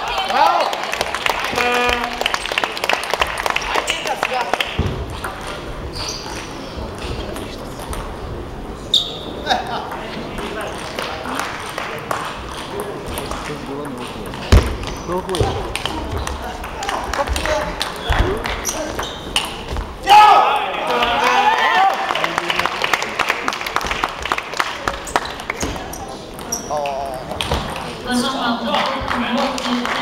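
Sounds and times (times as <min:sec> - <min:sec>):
spectators shouting and cheering: 0:00.0 - 0:02.8, 0:20.0 - 0:23.5
crowd chatter: 0:00.0 - 0:30.0.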